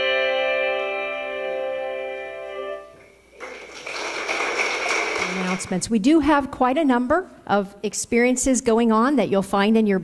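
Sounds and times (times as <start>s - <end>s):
congregation applauding: 3.3s - 5.8s.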